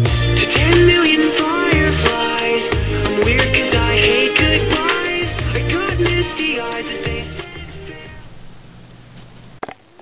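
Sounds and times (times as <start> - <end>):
music: 0.0 - 8.7
faint hiss and low hum: 0.6 - 9.6.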